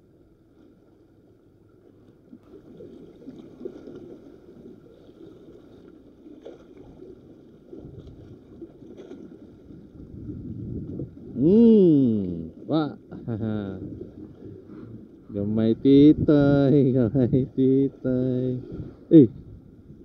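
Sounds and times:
waves lapping against rocks: 1.7s - 20.0s
wind on microphone: 9.6s - 12.0s, 13.3s - 20.0s.

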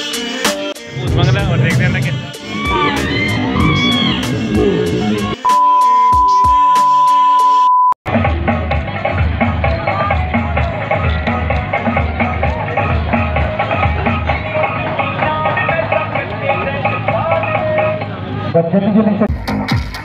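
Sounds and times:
background music with steady beat: 0.0s - 18.2s, 19.2s - 20.0s
test-tone beep: 5.4s - 8.0s.

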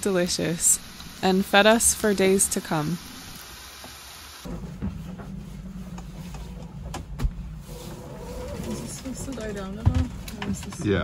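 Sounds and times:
fish sizzling in a frying pan: 0.0s - 4.5s
low hum and rumble: 4.5s - 10.8s.

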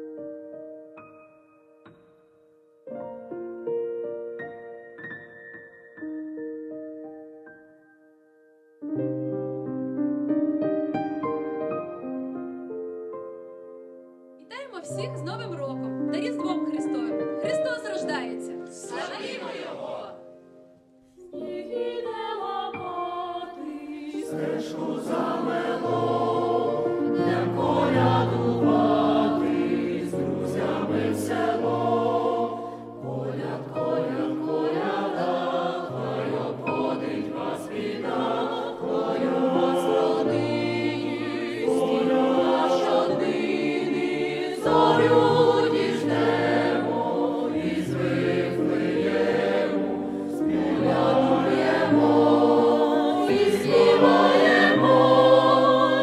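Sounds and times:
choir singing a carol: 14.5s - 56.0s.

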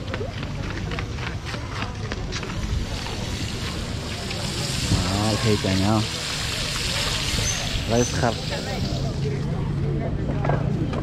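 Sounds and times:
street market hubbub: 0.0s - 11.0s
wind noise on microphone: 2.3s - 4.1s.

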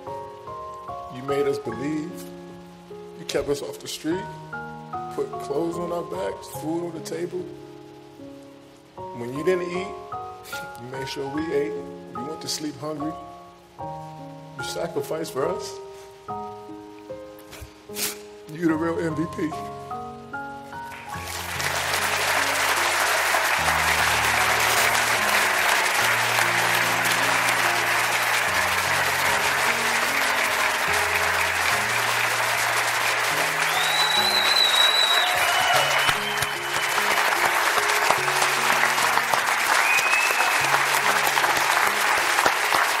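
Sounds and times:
audience applauding: 20.8s - 43.0s
short high whistles: 33.6s - 37.0s, 39.8s - 40.6s.

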